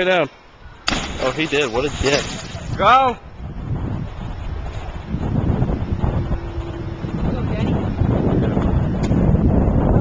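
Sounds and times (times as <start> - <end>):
wind buffeting microphone: 0.5 - 10.0.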